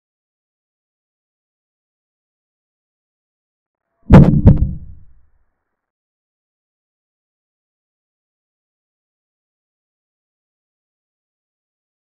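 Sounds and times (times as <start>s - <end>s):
heavy deep thumps: 4.1s - 5.1s.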